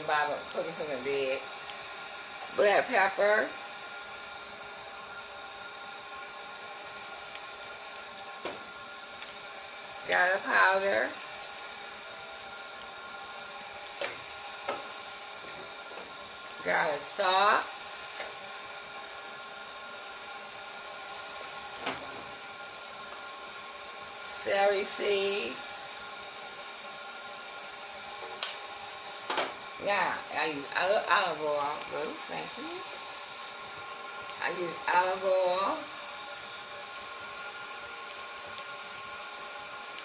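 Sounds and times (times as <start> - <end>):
room hum and hiss: 0.0 - 40.0.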